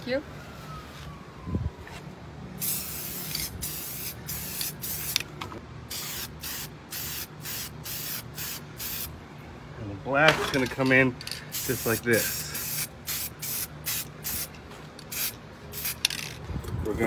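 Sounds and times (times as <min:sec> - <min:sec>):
spray paint can spraying: 0:02.6 - 0:05.2, 0:05.9 - 0:09.1, 0:11.5 - 0:16.3.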